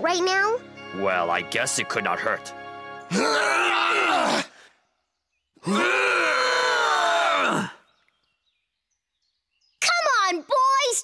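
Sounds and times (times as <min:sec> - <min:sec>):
cartoon men straining and groaning: 0:03.0 - 0:04.7, 0:05.6 - 0:07.9.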